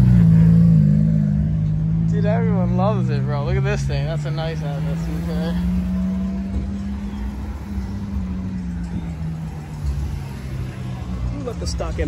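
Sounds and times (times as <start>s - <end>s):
car engine passing at low revs: 0.0s - 12.0s.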